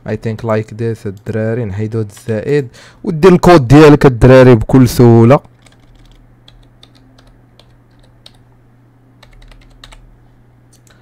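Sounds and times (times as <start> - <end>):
typing on computer keyboard: 5.4 - 8.4, 9.2 - 10.0.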